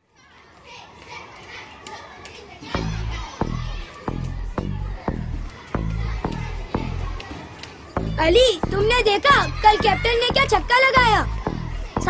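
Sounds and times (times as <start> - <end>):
children playing and chattering: 0.0 - 12.0.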